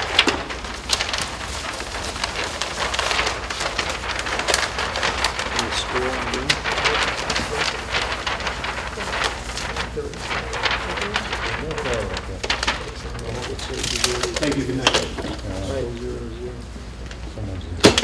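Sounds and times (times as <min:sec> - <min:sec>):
paper sheets rustling and crinkling: 0:00.0 - 0:18.0.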